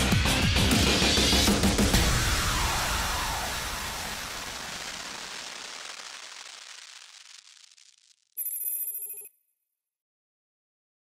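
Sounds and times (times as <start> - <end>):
bright electronic ringing tone: 8.4 - 9.4.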